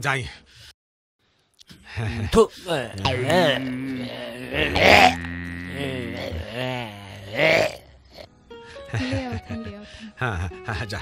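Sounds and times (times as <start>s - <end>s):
man making wordless vocal sounds: 1.6s - 8.3s
background music with low drone: 1.9s - 11.0s.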